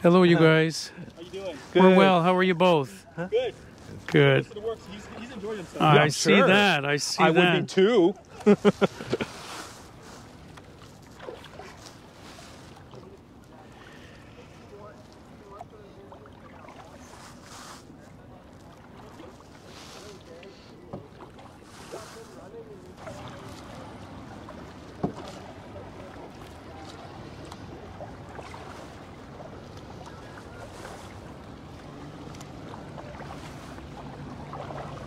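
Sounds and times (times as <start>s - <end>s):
paddle strokes swishing water: 0.0s - 35.0s.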